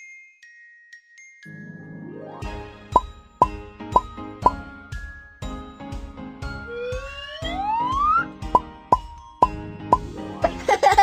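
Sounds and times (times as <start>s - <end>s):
upbeat children's music: 0.0s - 11.0s.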